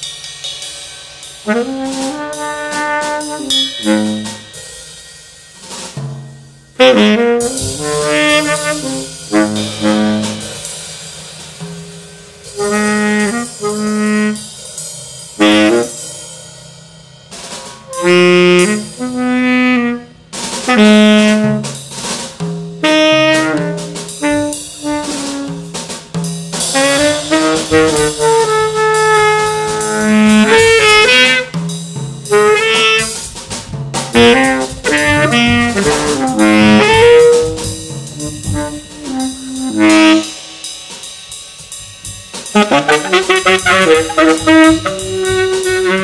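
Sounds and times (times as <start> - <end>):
drum kit with cymbals: 0.0 - 46.0
tenor saxophone jazz phrases: 1.4 - 4.5, 6.8 - 10.6, 12.6 - 14.5, 15.4 - 16.0, 17.9 - 21.8, 22.8 - 25.7, 26.7 - 31.6, 32.3 - 33.2, 34.0 - 40.4, 42.5 - 46.0.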